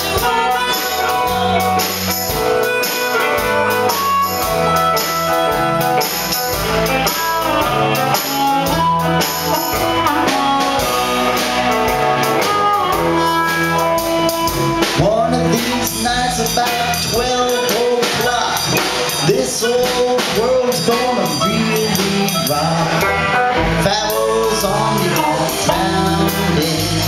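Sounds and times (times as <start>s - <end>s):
bass guitar: 0.0s - 27.0s
drum kit beat: 0.0s - 27.0s
electric guitar: 0.0s - 27.0s.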